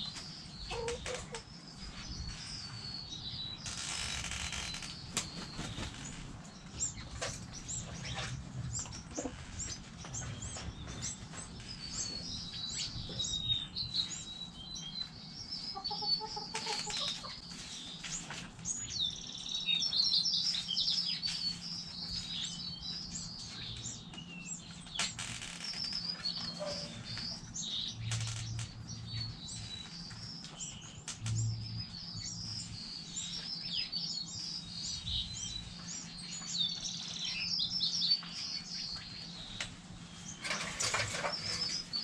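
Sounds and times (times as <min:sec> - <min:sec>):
small birds chirping: 0:00.0 - 0:42.0.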